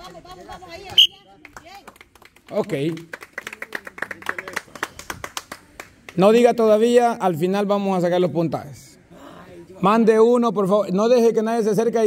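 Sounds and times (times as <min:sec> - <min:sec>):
people clapping: 0:00.0 - 0:06.4.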